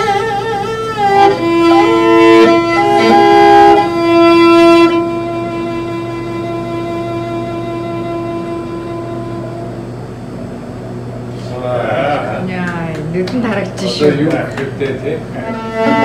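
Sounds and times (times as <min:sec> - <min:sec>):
bowed fiddle notes: 0:00.0 - 0:10.3, 0:15.3 - 0:16.0.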